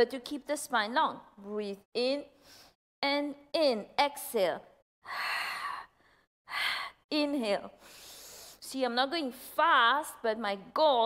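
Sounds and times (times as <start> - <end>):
woman breathing: 2.4 - 2.8, 5.0 - 7.1, 7.8 - 8.6.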